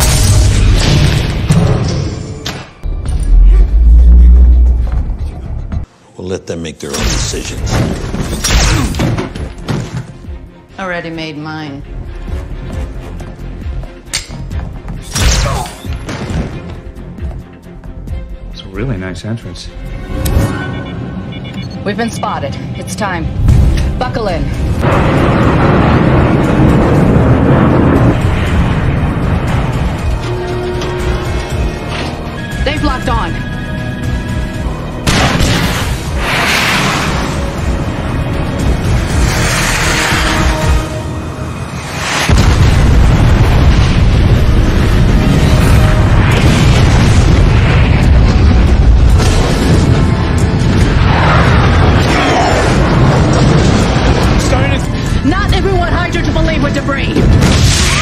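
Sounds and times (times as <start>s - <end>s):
dramatic music: 0.0s - 5.9s, 6.8s - 58.0s
loud explosion with deep rumble: 24.8s - 30.2s, 42.0s - 55.2s.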